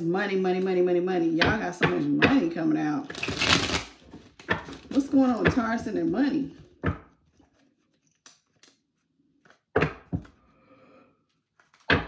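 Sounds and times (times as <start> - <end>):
cards riffle shuffled: 3.1 - 5.0, 7.2 - 10.4, 11.3 - 11.9.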